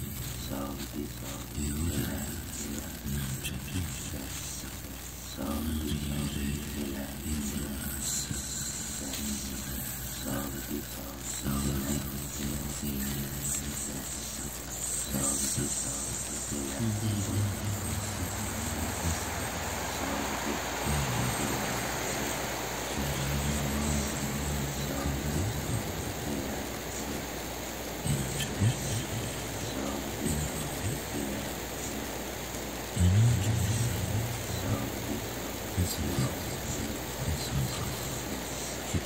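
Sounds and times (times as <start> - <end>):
steady hiss: 0.0 - 39.0
person humming: 8.3 - 27.4.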